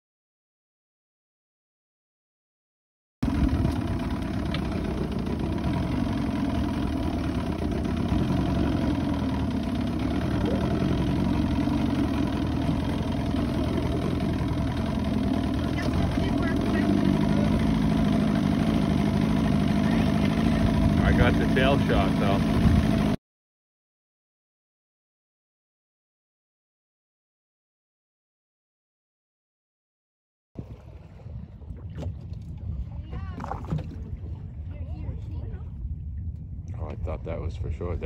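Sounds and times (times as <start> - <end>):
boat engine idling: 3.2 - 23.2, 30.6 - 38.0.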